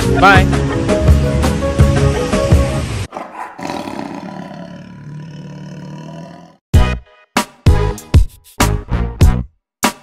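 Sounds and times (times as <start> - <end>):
lion roar: 3.1 - 6.6.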